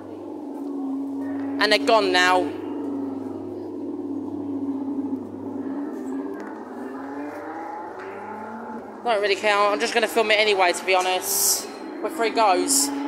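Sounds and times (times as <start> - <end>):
simulated car engine sound effect: 0.0 - 13.0.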